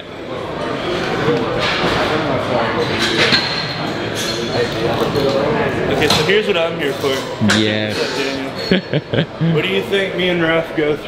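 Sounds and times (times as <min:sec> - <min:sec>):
people talking at once: 0:04.6 - 0:11.0.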